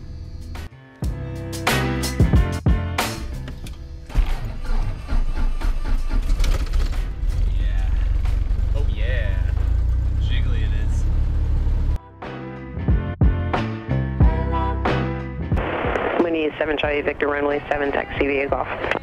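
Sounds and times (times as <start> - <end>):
background music: 0.0 - 11.0, 12.0 - 19.0
aircraft low rumble: 3.2 - 12.0.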